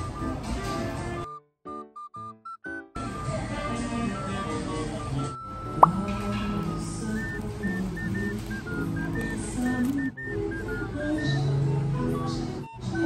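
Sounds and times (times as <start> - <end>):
background music with light melody: 0.0 - 13.0.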